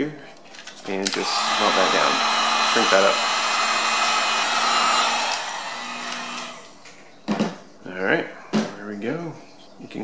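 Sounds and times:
heat gun blowing air: 1.1 - 6.7.

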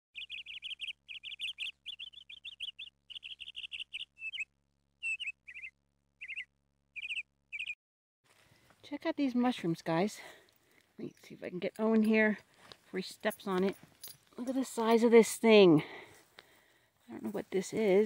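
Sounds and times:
bird chirping: 0.2 - 7.8.

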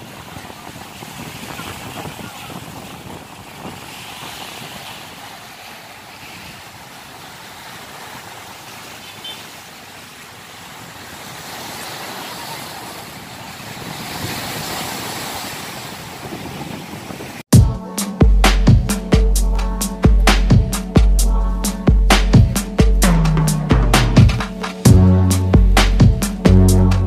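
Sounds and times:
wind on microphone: 0.0 - 5.4, 13.0 - 17.5
waves washing against seawall: 0.0 - 17.5.

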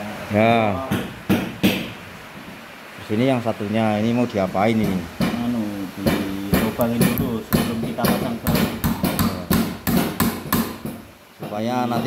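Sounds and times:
hammer tapping metal hinge: 4.8 - 12.0.

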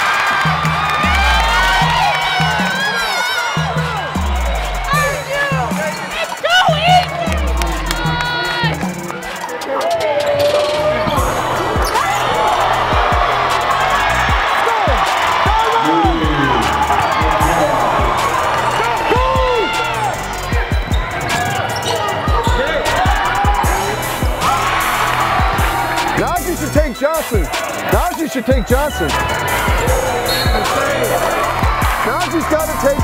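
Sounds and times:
crowd shouting and cheering: 0.0 - 33.0
sneakers squeaking on hardwood: 20.6 - 22.7, 30.2 - 31.0.

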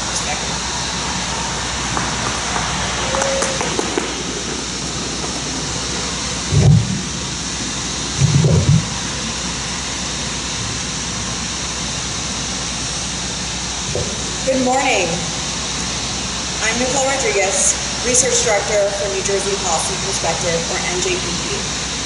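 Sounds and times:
street traffic: 0.0 - 22.0
microphone bumped thumps: 6.5 - 7.1, 8.2 - 9.0, 13.9 - 14.4.

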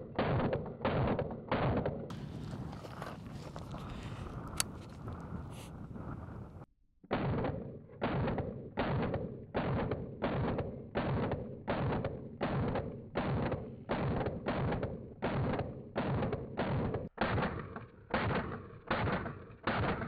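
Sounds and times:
gunshots with short echo: 0.0 - 6.2, 7.1 - 20.0.

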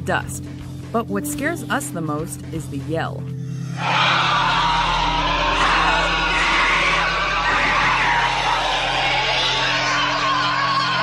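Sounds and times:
loud wavering inhuman shriek: 3.6 - 11.0.

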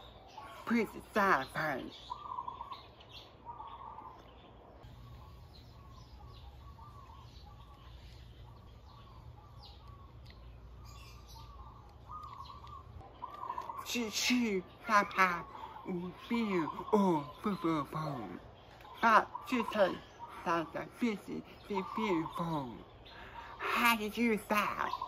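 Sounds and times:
birds warbling: 0.0 - 25.0.

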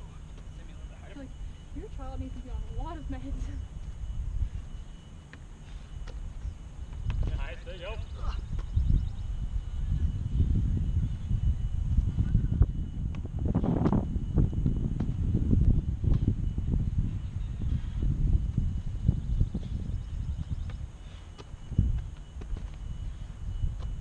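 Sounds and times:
wind rumbling on microphone: 0.0 - 5.0, 5.8 - 24.0.

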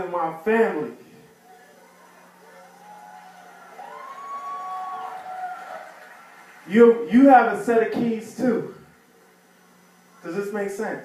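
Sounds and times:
audience cheering and whooping: 1.4 - 6.7.

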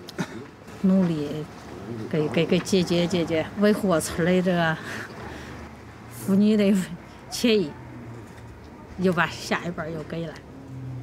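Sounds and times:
woman speaking: 0.8 - 1.5, 2.1 - 5.0, 6.1 - 7.8, 9.0 - 10.4.

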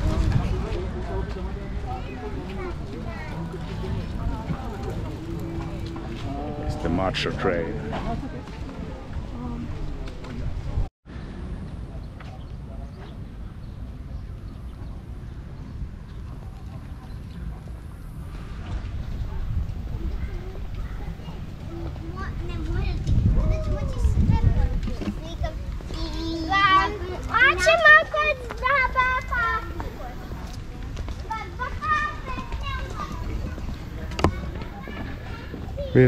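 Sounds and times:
background voices: 0.0 - 10.8
faint indistinct voices: 0.0 - 36.0.

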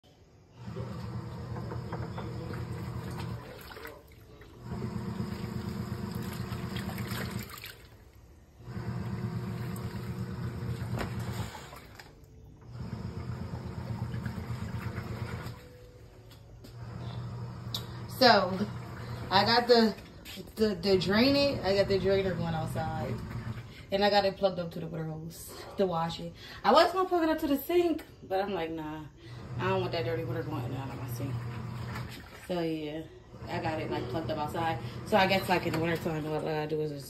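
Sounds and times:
washing machine motor humming: 0.0 - 37.0
water sloshing: 2.1 - 12.4, 13.2 - 16.1, 18.2 - 24.2, 29.5 - 36.9.

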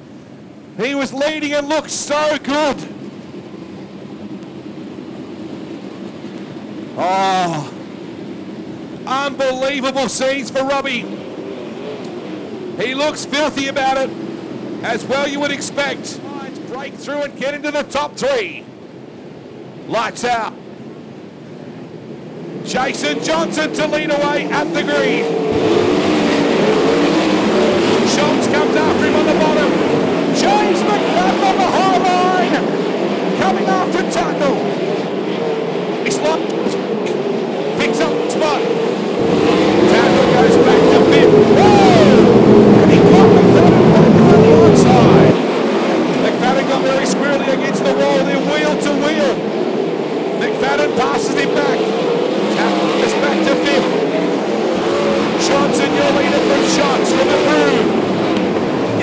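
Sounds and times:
race car engines at full throttle: 0.0 - 59.0.

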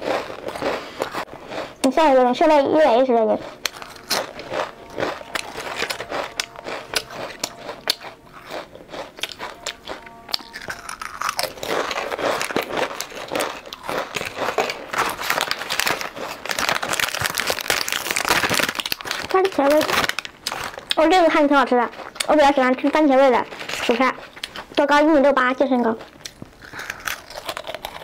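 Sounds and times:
chips crunching and chewing: 0.0 - 28.0
plastic packaging crinkling: 9.2 - 24.8.

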